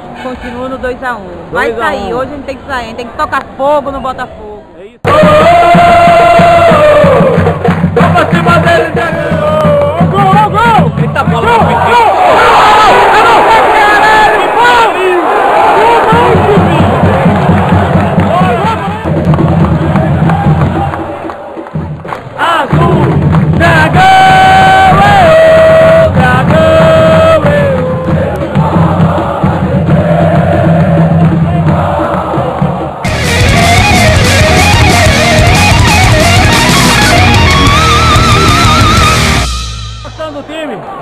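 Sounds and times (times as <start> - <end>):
football crowd cheering: 5.0 - 41.0
crowd singing over music: 22.7 - 33.1
electric guitar rock music: 33.1 - 40.2.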